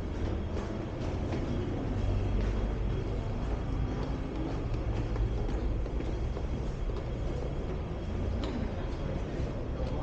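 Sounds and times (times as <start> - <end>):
footsteps on stone stairs: 0.0 - 9.0.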